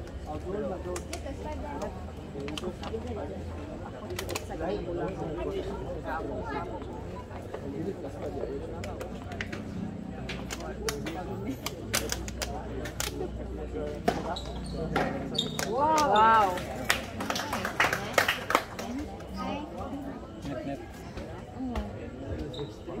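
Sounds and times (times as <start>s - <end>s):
spectators talking: 0.0s - 23.0s.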